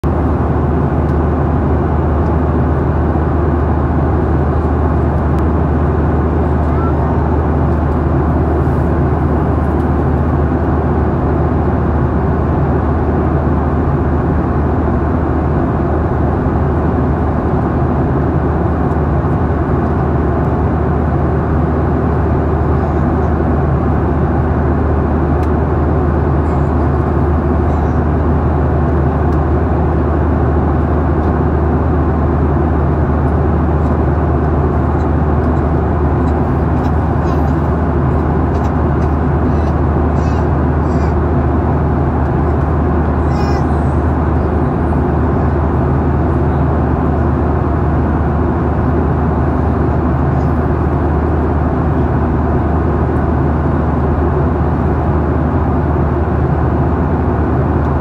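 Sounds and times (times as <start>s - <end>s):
jet engine drone: 0.0s - 58.0s.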